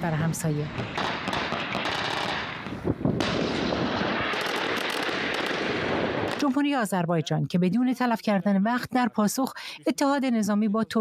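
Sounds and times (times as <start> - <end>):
continuous gunfire: 0.8 - 6.5.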